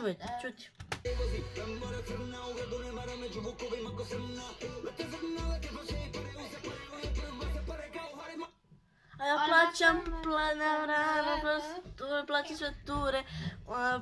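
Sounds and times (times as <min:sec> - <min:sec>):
music with sung voice: 0:01.0 - 0:09.3.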